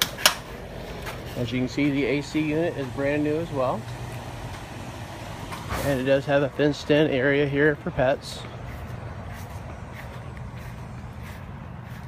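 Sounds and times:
steady low hum: 0:00.0 - 0:12.0
faint brushing noises: 0:00.4 - 0:12.0.

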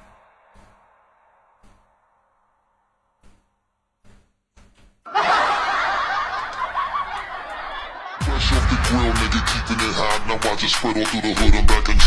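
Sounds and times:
laughter and chuckling: 0:05.1 - 0:10.2.

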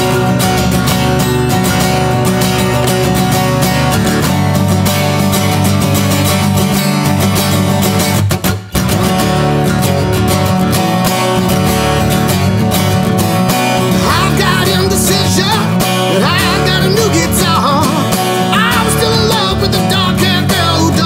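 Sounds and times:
acoustic guitar strumming: 0:00.0 - 0:21.0
man singing: 0:13.8 - 0:21.0.

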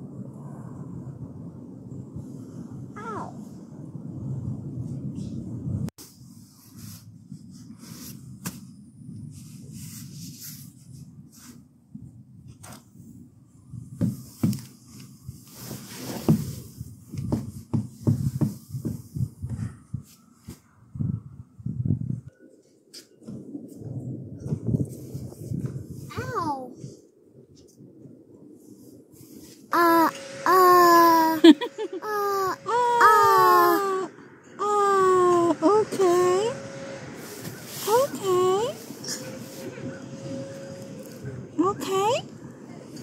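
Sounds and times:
footsteps on wooden deck: 0:14.0 - 0:14.8, 0:16.0 - 0:19.6
toddler rising vocal sound: 0:29.7 - 0:35.6.

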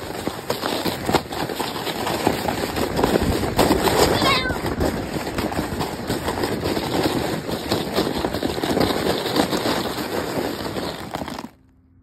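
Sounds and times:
snow tube sliding over snow: 0:00.0 - 0:11.7.

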